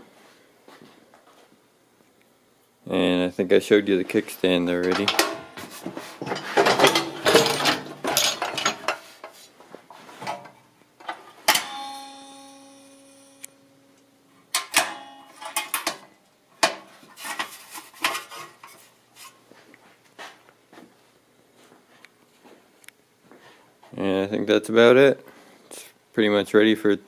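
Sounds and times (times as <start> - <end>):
metal clattering and clanks: 4.8 - 9.0, 14.6 - 18.8.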